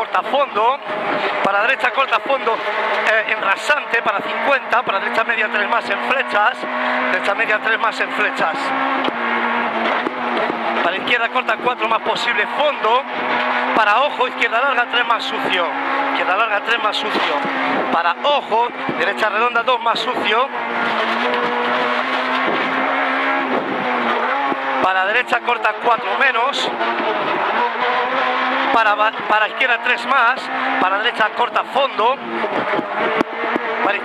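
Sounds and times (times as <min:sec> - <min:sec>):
car engine at steady revs: 0:00.0 - 0:34.0
tyre and road noise: 0:00.0 - 0:34.0.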